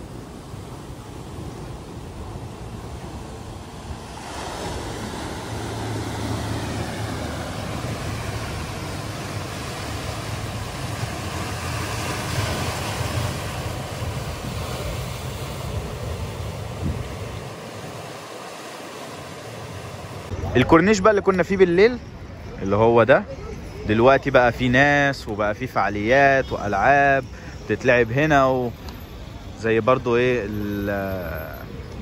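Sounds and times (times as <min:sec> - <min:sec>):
wind buffeting microphone: 0:00.0 - 0:18.1
waves breaking on rocky shore: 0:00.0 - 0:20.6.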